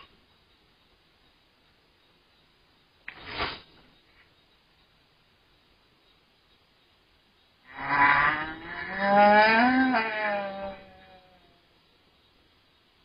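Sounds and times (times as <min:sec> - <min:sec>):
loud drawn-out moaning call: 0:07.7 - 0:11.7.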